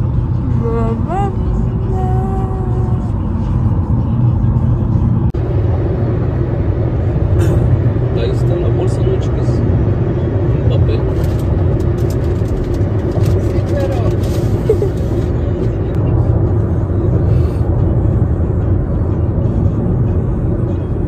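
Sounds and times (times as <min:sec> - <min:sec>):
car cabin road rumble: 0:00.0 - 0:21.0
small clicks and crackles: 0:11.1 - 0:15.2.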